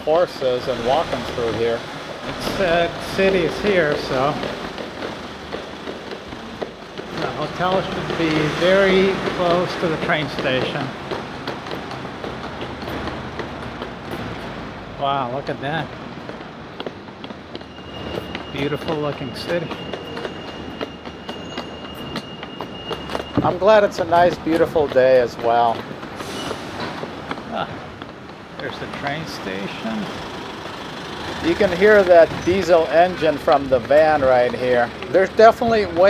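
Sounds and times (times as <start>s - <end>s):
footsteps on pavement: 0.0s - 36.0s
steady background noise: 0.0s - 36.0s
vehicle engines rumbling: 0.0s - 36.0s.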